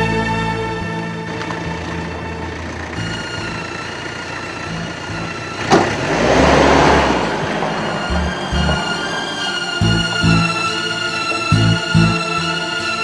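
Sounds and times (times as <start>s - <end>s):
drama score music: 0.0s - 13.0s
loud rushing noise: 5.6s - 10.6s.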